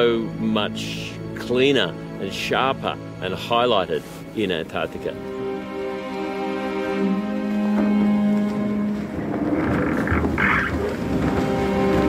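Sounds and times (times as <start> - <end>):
background music with chords: 0.0 - 12.0
ice crunching against ship hull: 8.4 - 12.0.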